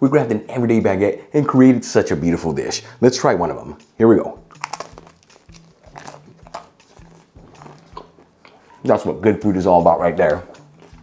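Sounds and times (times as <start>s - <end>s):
crunching and chewing toast: 4.5s - 8.8s, 10.4s - 11.0s.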